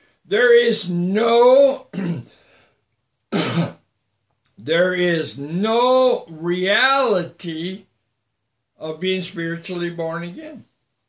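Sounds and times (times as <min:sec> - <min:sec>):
man clearing throat: 0:01.9 - 0:02.3, 0:03.3 - 0:03.8.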